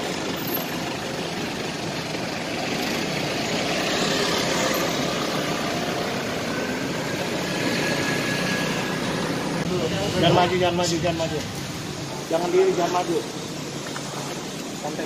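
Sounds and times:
car pulling away: 0.0s - 14.8s
city traffic noise: 0.0s - 15.0s.

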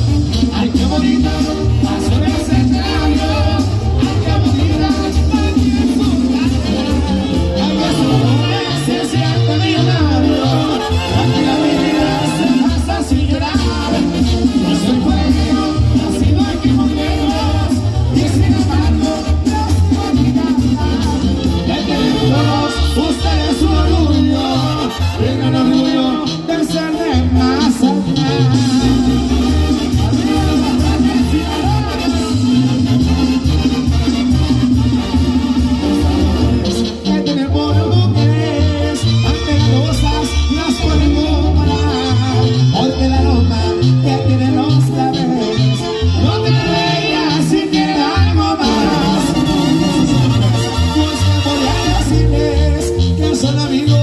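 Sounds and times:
brass band playing: 0.0s - 54.0s
low bass line: 0.0s - 54.0s.

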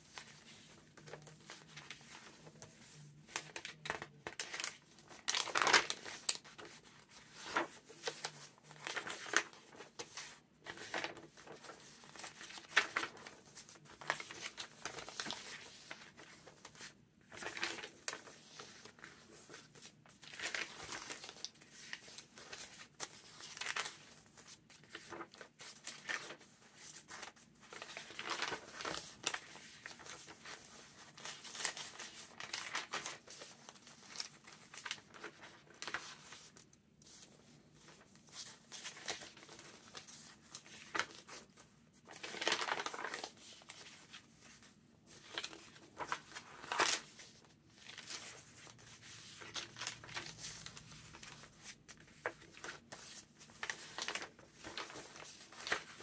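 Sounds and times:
paper pages rustling and crinkling: 0.0s - 56.0s.

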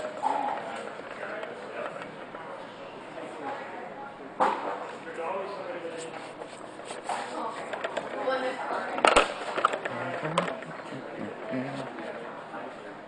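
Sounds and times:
people talking indistinctly: 9.8s - 12.5s.

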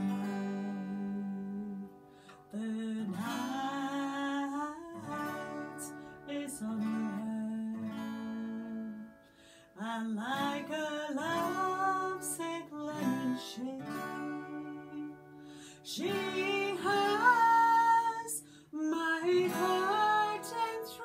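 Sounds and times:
acoustic guitar: 0.0s - 21.0s
woman singing folk song: 0.0s - 21.0s.

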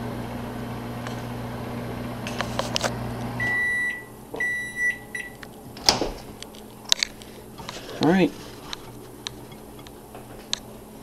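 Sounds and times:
microwave oven humming: 0.0s - 11.0s
microwave high beeps: 3.4s - 5.4s.

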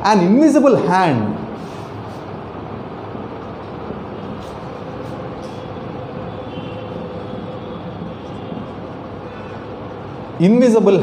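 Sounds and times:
background hum and hiss: 0.0s - 11.0s
marker writing on whiteboard: 3.9s - 9.6s.

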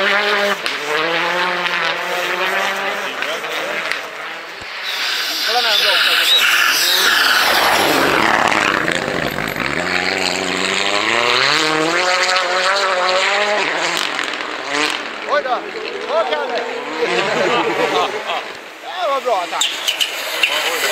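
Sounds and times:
rally car passing at speed: 0.0s - 20.9s.

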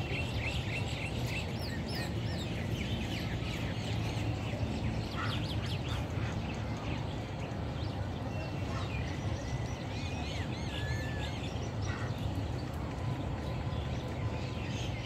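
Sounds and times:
flock of birds chirping: 0.0s - 15.0s.

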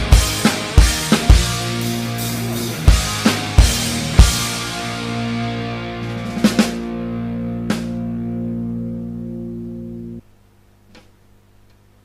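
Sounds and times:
rock band final chord: 0.0s - 10.2s.

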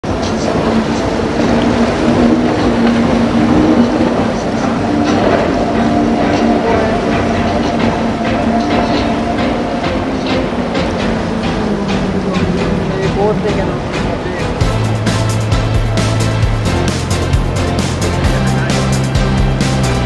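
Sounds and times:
outboard engines droning: 0.0s - 20.0s.

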